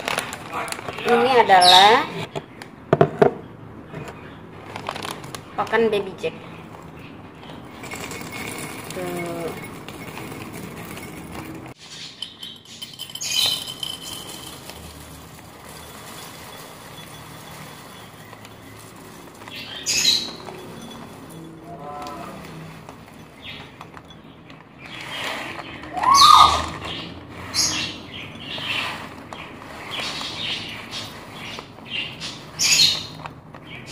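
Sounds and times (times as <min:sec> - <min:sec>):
plastic bag crinkling: 0:00.0 - 0:01.7, 0:04.6 - 0:05.7, 0:06.6 - 0:33.9
seeds rattling into bowl: 0:06.7 - 0:33.9.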